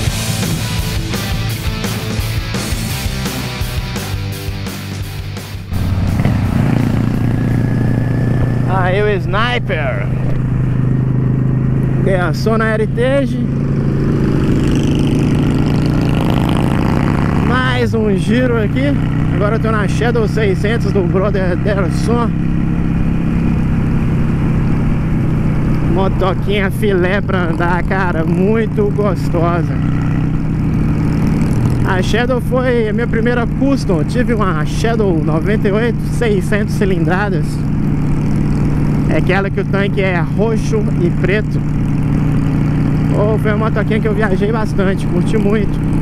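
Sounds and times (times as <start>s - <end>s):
motorcycle engine cruising: 0.0s - 46.0s
person speaking: 8.7s - 10.3s.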